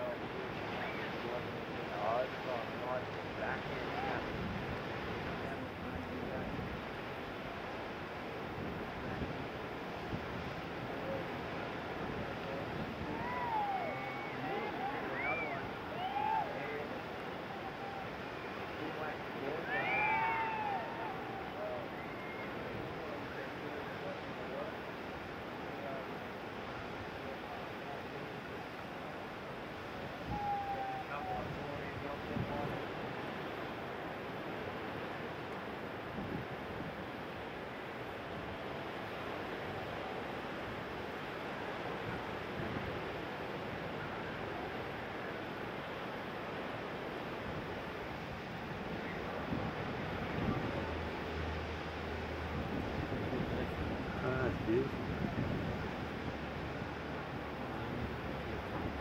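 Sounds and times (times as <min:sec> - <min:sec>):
ocean surf breaking: 0:00.0 - 0:59.0
wind on microphone: 0:03.4 - 0:23.4, 0:29.7 - 0:35.4, 0:36.0 - 0:59.0.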